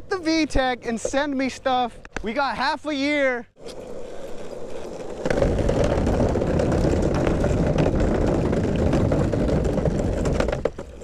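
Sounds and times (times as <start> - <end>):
skateboard wheels rolling on wood: 3.6 - 11.0.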